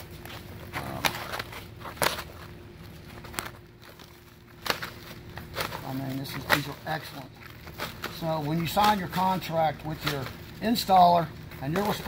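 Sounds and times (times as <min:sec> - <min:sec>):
gritty shingle rustle: 0:00.0 - 0:12.0
shingles crackling and slapping: 0:00.0 - 0:12.0.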